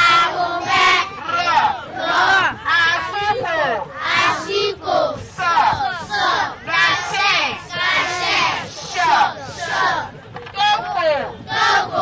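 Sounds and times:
children chanting in unison: 0.0 - 10.1, 11.5 - 12.0.

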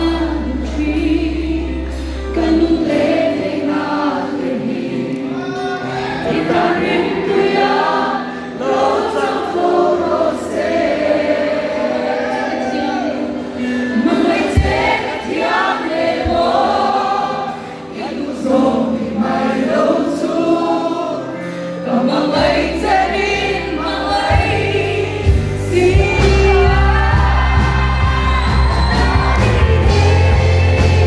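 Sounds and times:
woman singing into microphone: 0.0 - 5.4, 12.6 - 31.0
band with drums and guitar: 12.9 - 16.8, 24.2 - 31.0.

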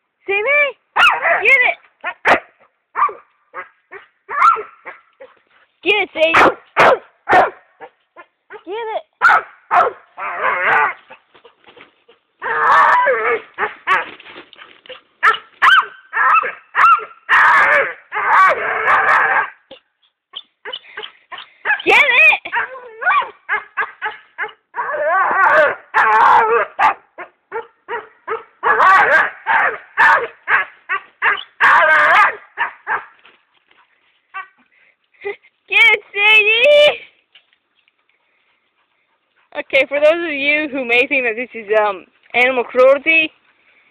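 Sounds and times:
dog barking and whining: 1.0 - 5.4, 6.2 - 11.2, 12.4 - 14.2, 14.9 - 33.2, 34.3 - 34.6.

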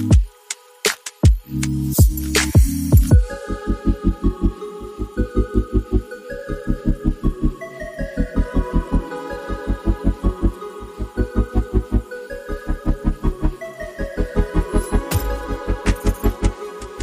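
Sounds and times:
electronic music with pulsing bass: 0.0 - 17.0.

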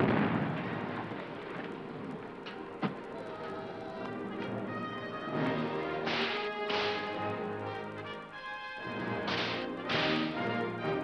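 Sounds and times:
sustained music: 0.0 - 11.0.

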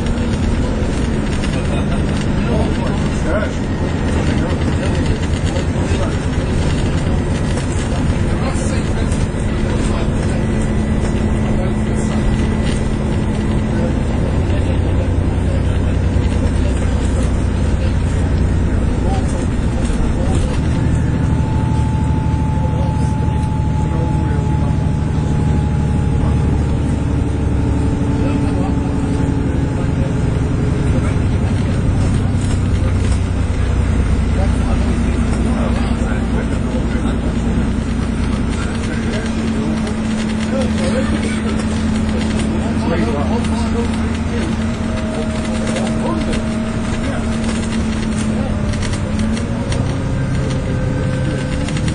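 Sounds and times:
bus diesel engine drone: 0.0 - 51.9
road and cabin noise: 0.0 - 51.9.

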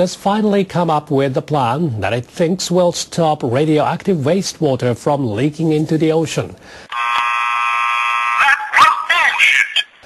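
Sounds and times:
buzzing tone: 6.9 - 8.4.

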